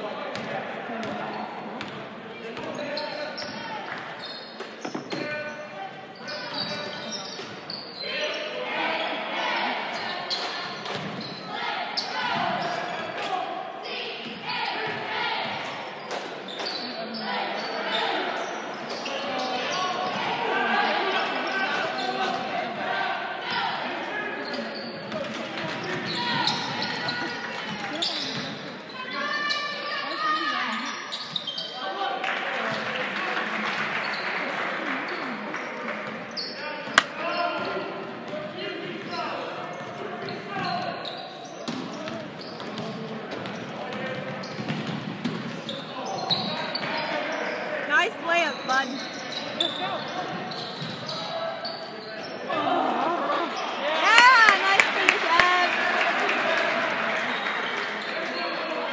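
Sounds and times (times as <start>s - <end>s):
people talking and calling out: 36.3s - 43.1s, 46.0s - 56.2s.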